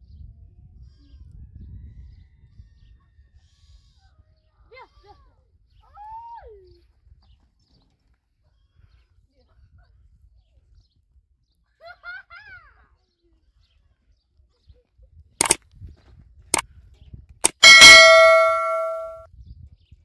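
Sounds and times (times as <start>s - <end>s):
bell ding: 17.4s - 19.2s
chirping call: 17.6s - 19.2s.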